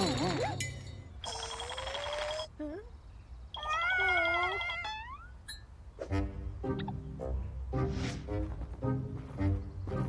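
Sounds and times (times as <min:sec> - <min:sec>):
cartoon whiny vocal sound: 0:03.6 - 0:05.3.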